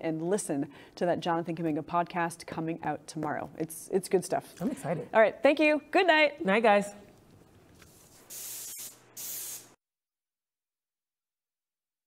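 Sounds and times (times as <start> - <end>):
airy hiss bursts: 7.9 - 9.8.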